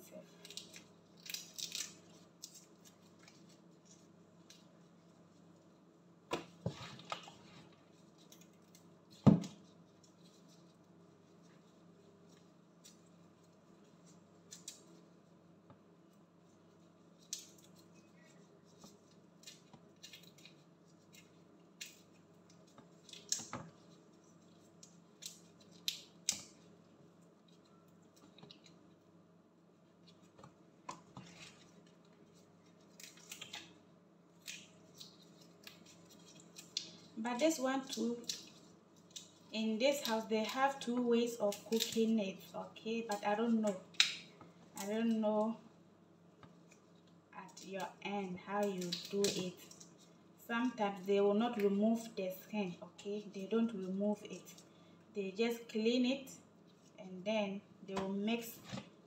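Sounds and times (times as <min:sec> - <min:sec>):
shrimp shells crackling as peeled: 0:00.3 - 0:04.7, 0:17.2 - 0:26.6, 0:32.8 - 0:42.2, 0:48.6 - 0:50.0.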